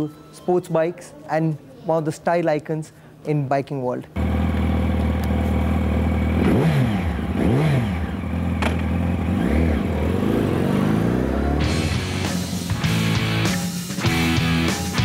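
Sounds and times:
motorcycle engine idling and revving: 4.2 - 12.9.

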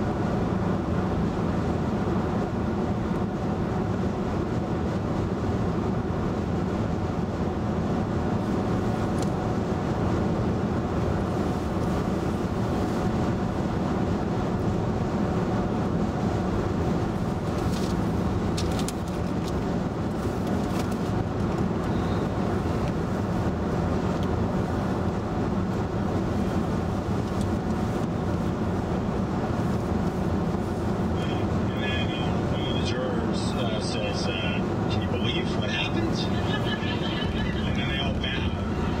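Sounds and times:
tyre and road noise: 0.0 - 39.0.

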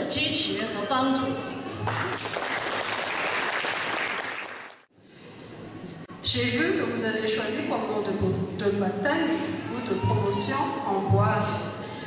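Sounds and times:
audience applauding: 1.9 - 4.9.

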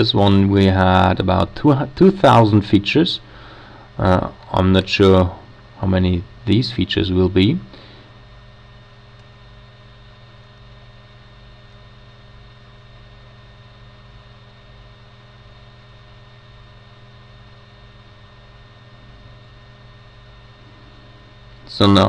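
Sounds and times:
low room tone hum and hiss: 0.0 - 22.0.

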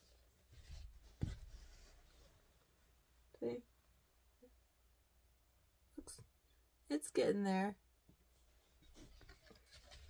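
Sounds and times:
paper rubbing and rustling: 9.0 - 10.0.

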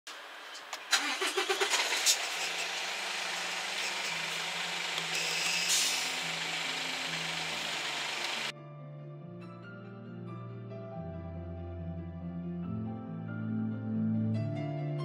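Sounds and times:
starter motor cranking: 0.7 - 8.5
diesel engine idling: 0.9 - 8.5.

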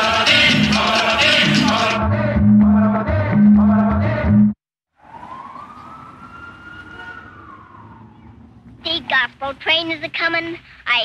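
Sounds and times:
music: 0.0 - 4.6
siren rising and falling: 5.0 - 8.8
low city noise: 5.0 - 11.0.

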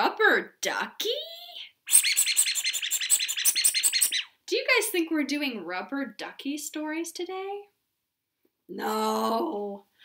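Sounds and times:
rubber duck squeaking: 1.5 - 4.4.

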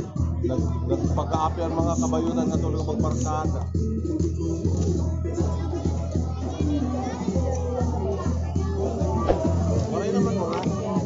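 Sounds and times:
children's voices: 4.4 - 11.0.

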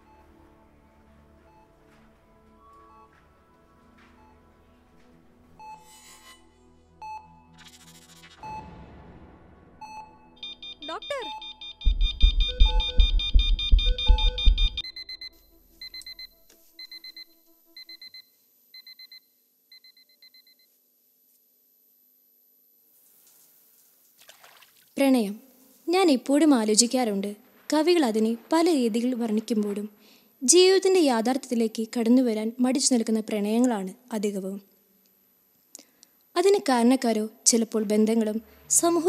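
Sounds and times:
patient monitor beeping: 10.4 - 20.7.

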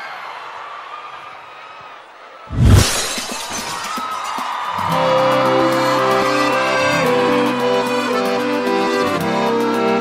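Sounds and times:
live band music: 5.3 - 10.0.

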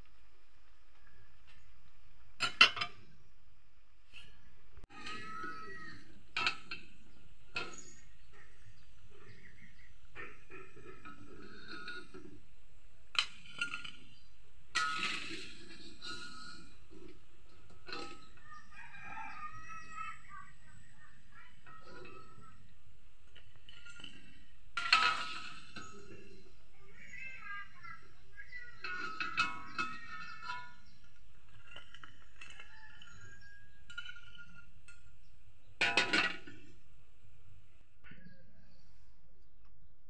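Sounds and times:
rooster crowing: 18.5 - 20.4.

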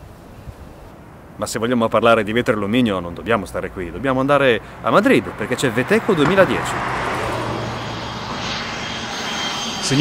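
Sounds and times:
airliner engine noise: 4.6 - 10.0.

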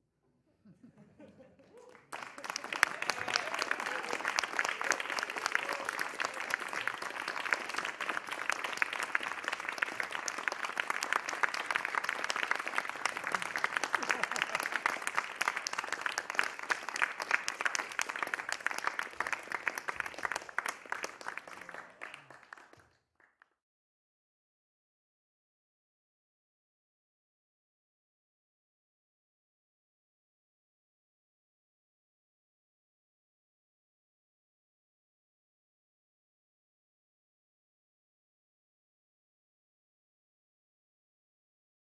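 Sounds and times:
audience applause: 1.6 - 23.3.

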